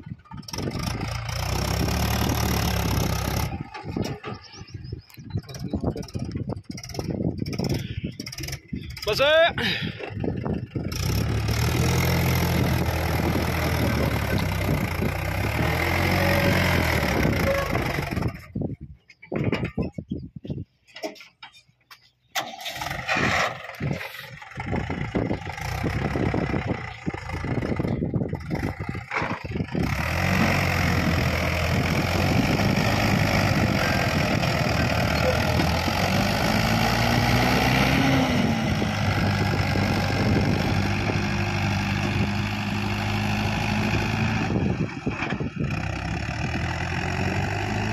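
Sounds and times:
tractor diesel engine under load: 0.0 - 47.9.

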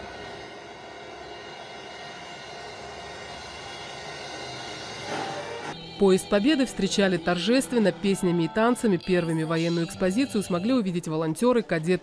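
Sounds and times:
steady mechanical drone: 0.0 - 5.9.

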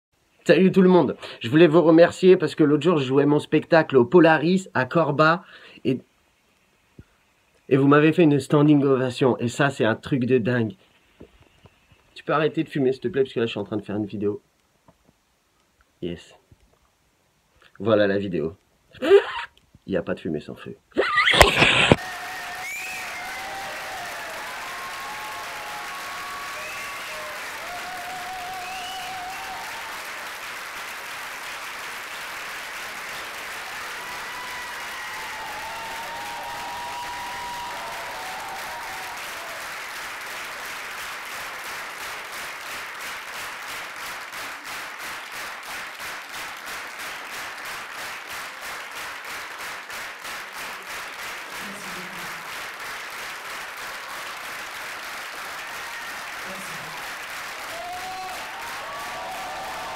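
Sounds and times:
cheers and whistles: 21.3 - 30.3, 33.6 - 40.0, 55.3 - 56.6, 57.5 - 59.9
audience applause: 21.4 - 59.9
rhythmic clapping in unison: 21.9 - 59.9.

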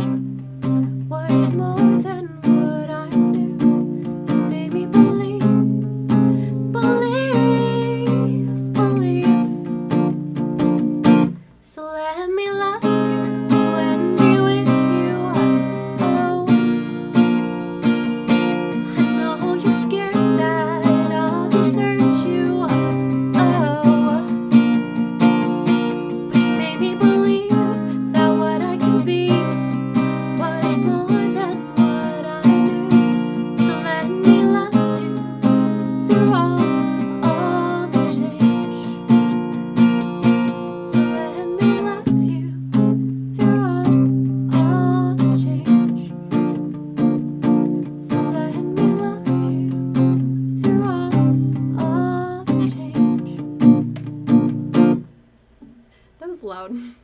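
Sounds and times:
acoustic guitar strumming: 0.0 - 11.6, 12.6 - 56.7
woman singing: 1.0 - 5.9, 6.5 - 9.8, 11.6 - 17.0, 18.5 - 39.1, 40.8 - 46.2, 47.8 - 53.4.

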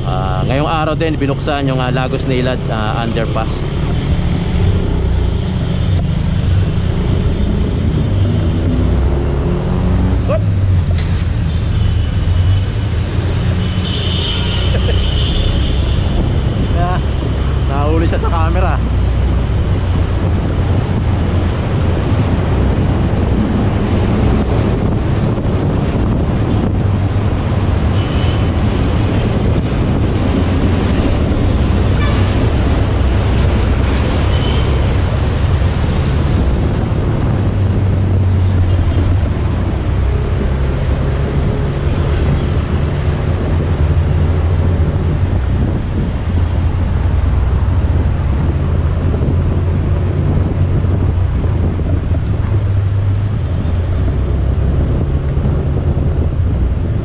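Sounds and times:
car traffic rumble: 0.0 - 57.0
wind buffeting microphone: 14.7 - 57.0.

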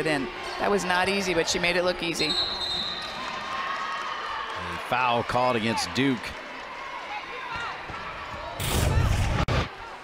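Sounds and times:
arena crowd murmuring: 0.0 - 10.0.

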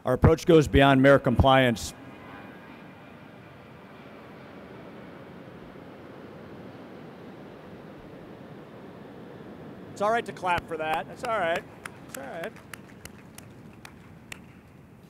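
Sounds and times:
faint high whine: 0.0 - 15.0
jet aircraft rushing noise: 0.0 - 15.0.

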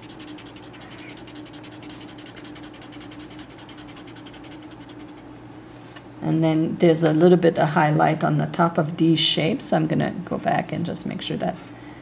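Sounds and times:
paper stump scrubbing on paper: 0.0 - 5.2.

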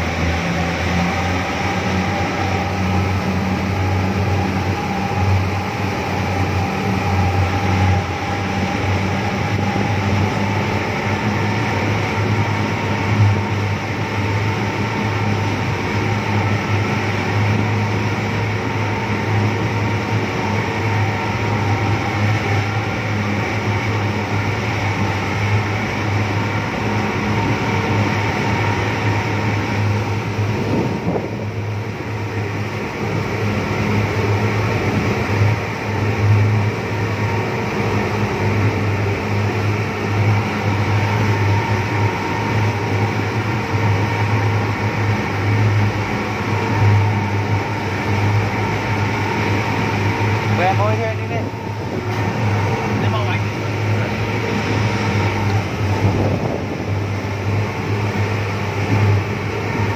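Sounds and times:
motor boat engine drone: 0.0 - 59.9
water rushing along hull: 0.0 - 59.9.

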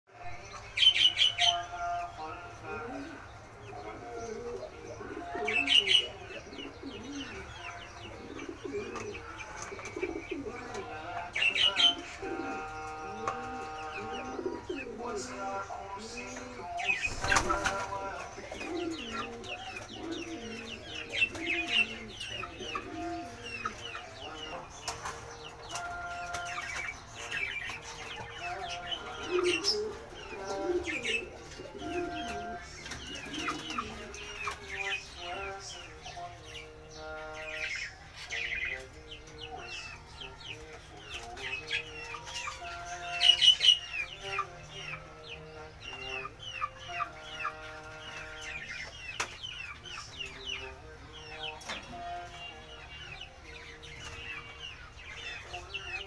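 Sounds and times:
chickens clucking: 0.1 - 56.0.

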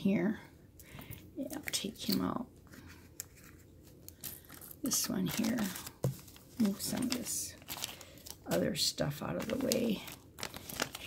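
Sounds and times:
woman speaking: 0.0 - 0.5, 1.4 - 2.5, 4.8 - 5.9, 6.6 - 7.6, 8.5 - 10.2.

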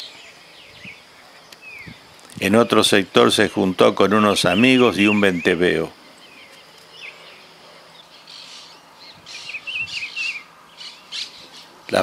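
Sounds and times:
birds chirping and calling: 0.0 - 12.0
faint outdoor hiss: 0.0 - 12.0.

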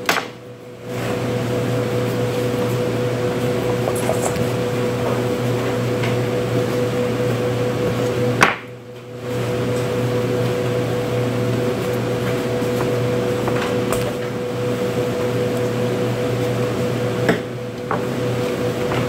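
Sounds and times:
machinery hum with steady tone: 0.0 - 19.0.

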